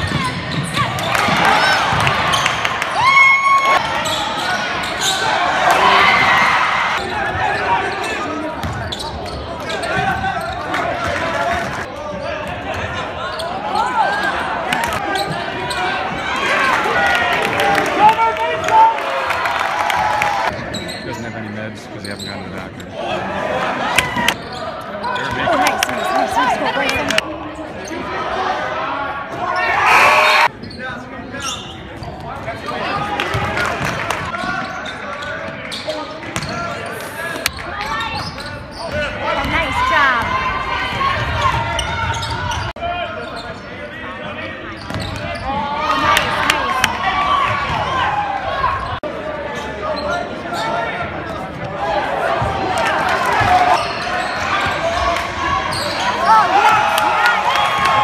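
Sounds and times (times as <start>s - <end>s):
spectators chattering and calling: 0.0s - 58.0s.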